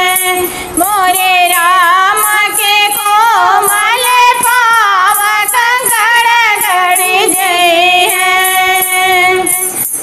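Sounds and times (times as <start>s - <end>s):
women singing folk song: 0.0s - 9.7s.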